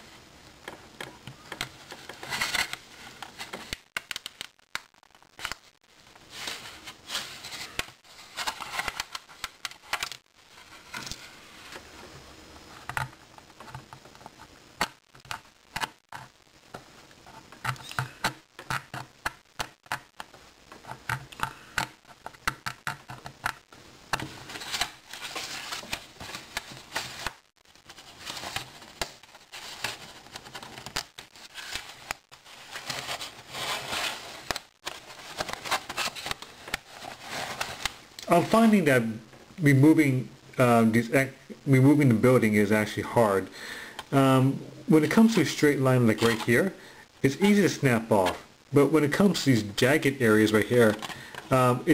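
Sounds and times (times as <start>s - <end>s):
plastic sheet clicking and crackling: 0.6s - 5.8s, 17.5s - 38.3s.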